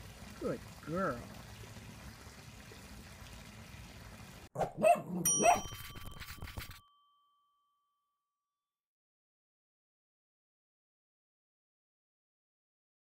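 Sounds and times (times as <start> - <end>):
cartoon dog barks: 4.6 - 5.8
bright bell ding: 5.2 - 8.3.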